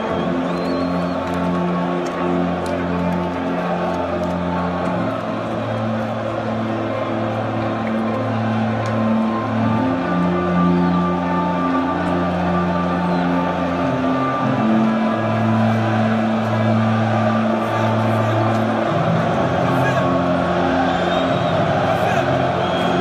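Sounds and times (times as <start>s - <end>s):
crowd noise: 0.0s - 23.0s.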